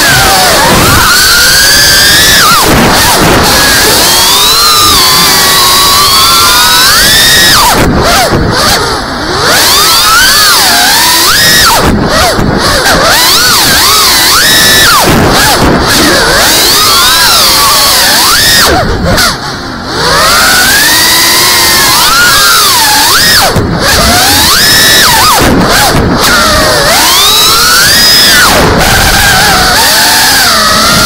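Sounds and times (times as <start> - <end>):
drone motors whining: 0.0 - 31.0.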